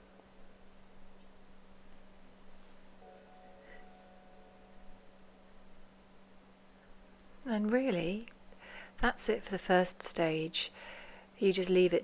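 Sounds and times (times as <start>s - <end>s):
steady low hum: 0.0s - 12.0s
faint ringing tone: 2.9s - 7.4s.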